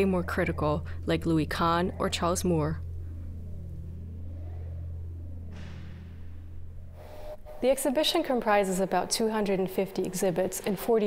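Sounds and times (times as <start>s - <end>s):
faint wavering tone: 0.0s - 11.0s
low soundtrack drone: 0.0s - 11.0s.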